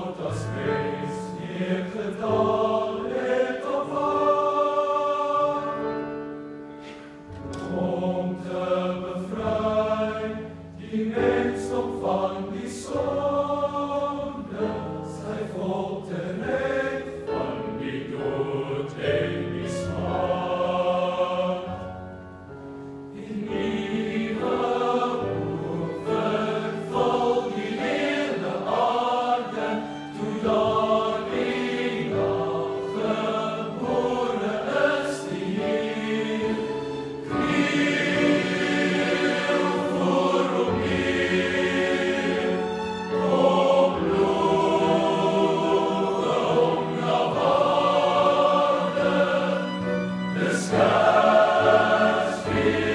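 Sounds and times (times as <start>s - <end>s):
boys' choir singing: 0.0s - 22.1s, 23.1s - 52.9s.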